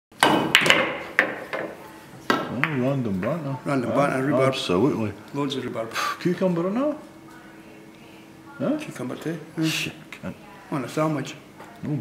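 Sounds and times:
pool balls clacking: 0:00.1 - 0:03.4.

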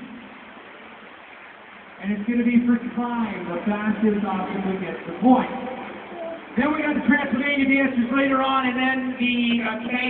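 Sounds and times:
crowded city street noise: 0:00.0 - 0:10.0.

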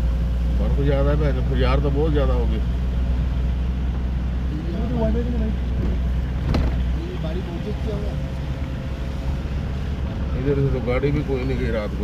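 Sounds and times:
car cabin rumble: 0:03.2 - 0:12.0.

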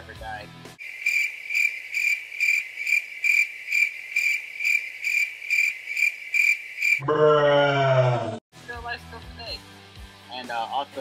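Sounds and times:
cricket chirping: 0:00.8 - 0:07.0.

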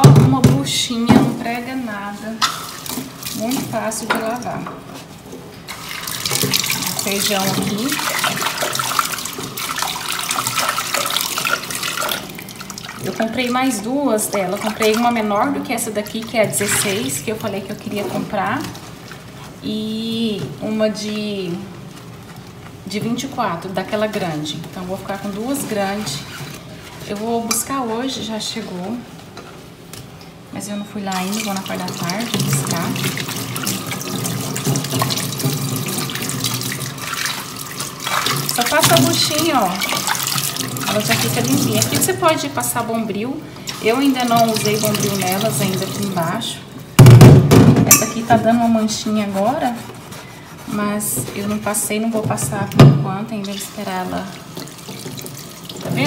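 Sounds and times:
hands rubbing and rinsing pot: 0:00.0 - 0:29.8, 0:31.1 - 0:46.9, 0:47.7 - 0:56.0
tap water running into a pot: 0:05.7 - 0:19.3, 0:31.1 - 0:46.5, 0:53.5 - 0:56.0.

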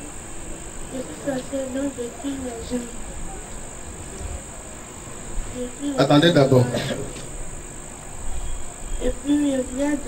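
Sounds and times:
high-pitched hiss: 0:00.0 - 0:10.0
young woman speaking softly: 0:00.9 - 0:03.4, 0:09.0 - 0:10.0.

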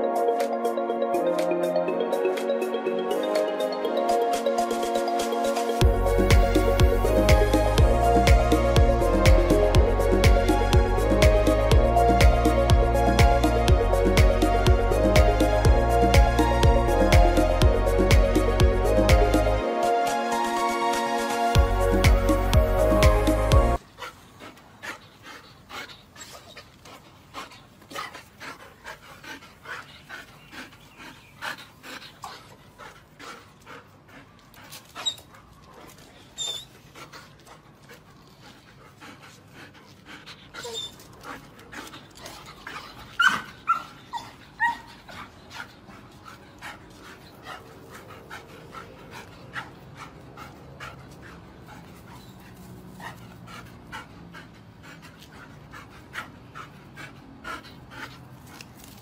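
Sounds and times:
dog panting rapidly: 0:04.6 - 0:19.6, 0:20.4 - 0:59.0
dog whining: 0:36.4 - 0:36.8, 0:40.6 - 0:41.1.

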